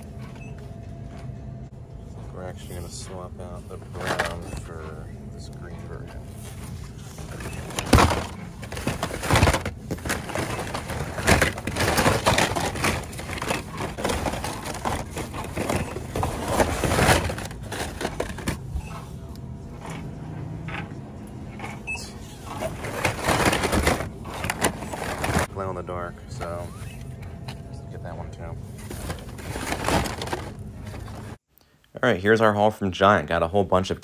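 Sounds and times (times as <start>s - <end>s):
steady low hum: 0.0s - 32.3s
plastic packs rustling and clattering: 2.1s - 20.1s, 21.9s - 31.4s.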